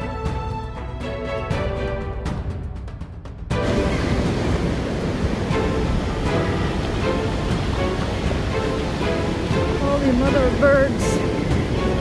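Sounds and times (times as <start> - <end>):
background music: 0.0 - 12.0
surf washing on beach: 3.6 - 12.0
wind on microphone: 3.6 - 12.0.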